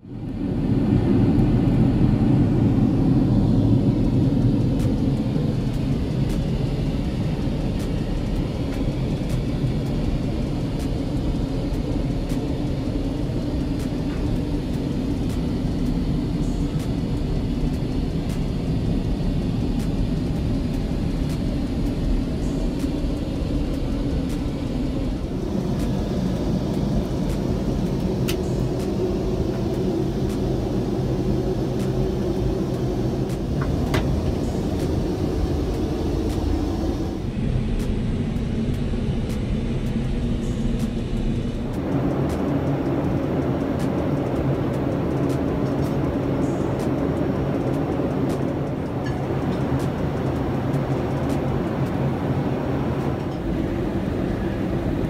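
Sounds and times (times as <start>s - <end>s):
aircraft cabin rumble: 0.0s - 55.0s.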